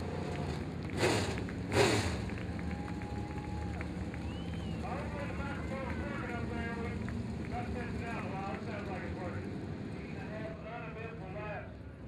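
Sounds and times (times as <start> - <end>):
race car engine idling: 0.0 - 12.0.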